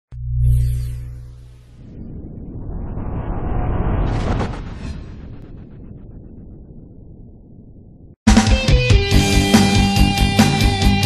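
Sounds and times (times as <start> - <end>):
low rumbling sound effect: 0.1 - 8.2.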